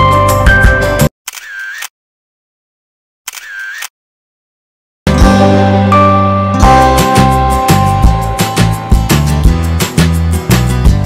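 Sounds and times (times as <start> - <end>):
camera shutter sound effect: 1.3 - 1.9, 3.3 - 3.9
background music: 5.1 - 11.0.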